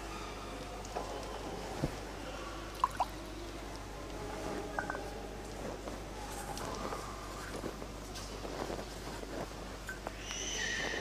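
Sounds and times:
low electrical hum: 0.0 - 11.0
metallic clinks of vessels: 4.8 - 5.0.

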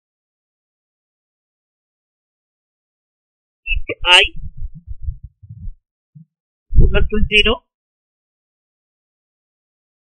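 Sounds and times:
person speaking: 3.7 - 5.7, 6.8 - 7.6
soft low thumps: 3.7 - 7.6.

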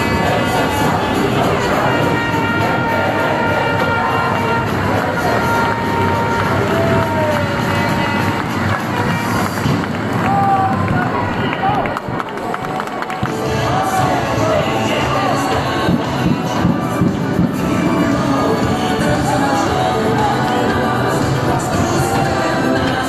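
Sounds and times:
music over loudspeakers: 0.0 - 12.2, 12.8 - 23.0
crowd noise and voices: 0.0 - 23.0.

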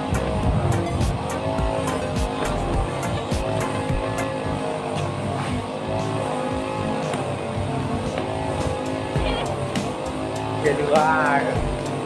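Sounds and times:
background music: 0.0 - 12.0
brush cutter engine running: 0.0 - 12.0.

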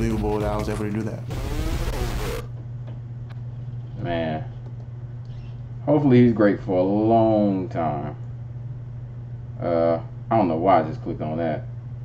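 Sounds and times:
played-back audio: 0.0 - 2.5
low electrical hum: 0.0 - 12.0.

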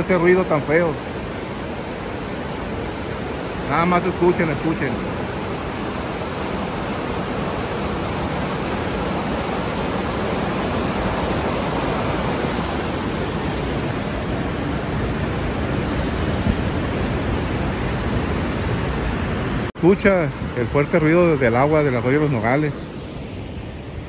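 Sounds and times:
floodwater rushing through tunnel: 0.0 - 22.8.

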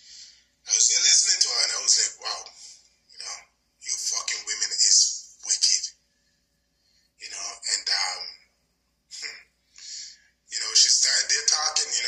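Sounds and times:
person talking: 0.7 - 5.9, 7.2 - 8.4, 9.1 - 12.0.

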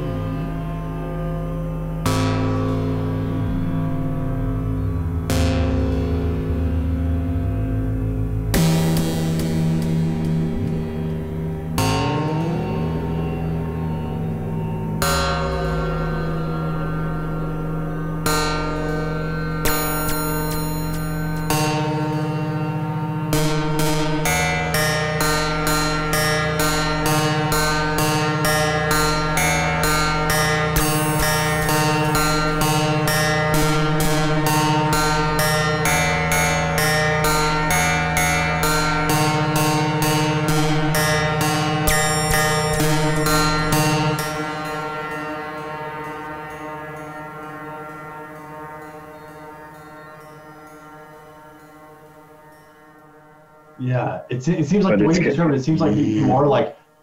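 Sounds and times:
low synthesizer drone: 0.0 - 53.9
synthesizer pulsed sequence: 2.1 - 21.7.

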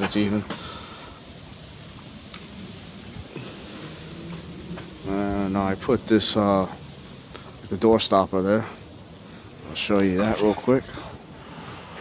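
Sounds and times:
high hiss: 0.0 - 12.0
low rumble: 1.2 - 9.8.

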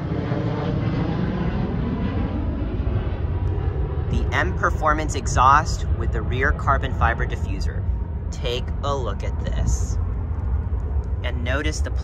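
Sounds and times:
airplane engine rumble: 0.0 - 12.0.

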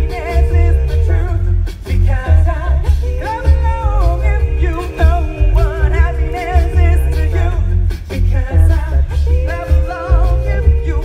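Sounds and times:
a cappella group singing: 0.0 - 11.0
deep vocal bass line: 0.0 - 11.0.

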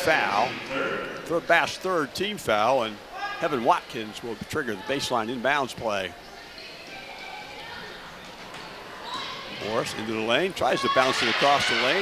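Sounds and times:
crowd murmur in large hall: 0.0 - 11.0.

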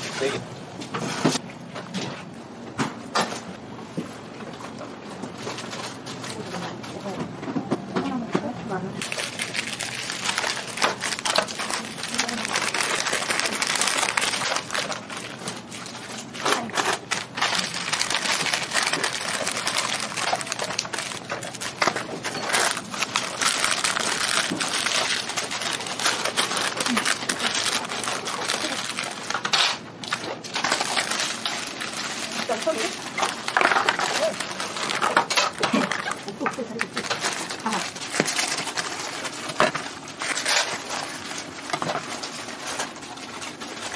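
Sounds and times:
paper rustling and crinkling: 9.0 - 43.9.

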